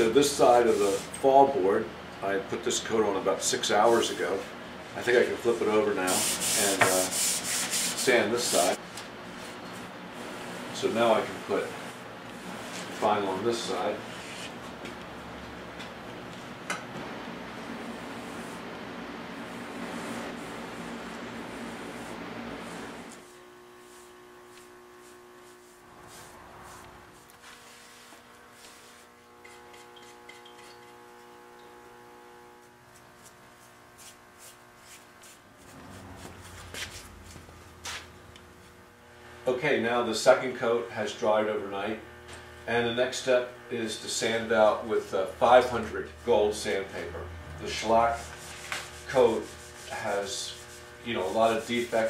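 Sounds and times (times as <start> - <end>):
electrical hum: 0.0 - 52.0.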